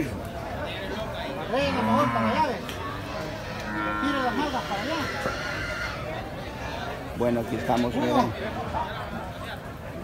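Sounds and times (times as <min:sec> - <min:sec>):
chatter of market crowd: 0:00.0 - 0:10.0
cattle mooing: 0:01.6 - 0:06.0.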